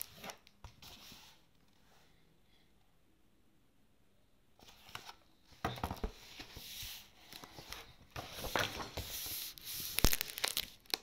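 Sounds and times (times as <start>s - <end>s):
book pages rustling: 5.9s - 11.0s.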